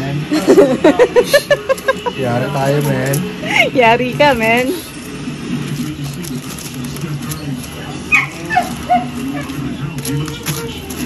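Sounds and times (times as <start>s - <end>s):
background conversation: 0.0s - 11.0s
small dog whimpering and yipping: 8.1s - 9.6s.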